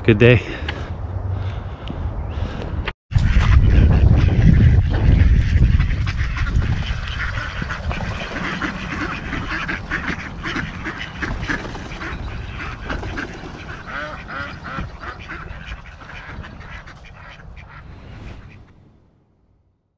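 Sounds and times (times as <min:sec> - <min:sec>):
ducks quacking: 0:02.3 - 0:18.8.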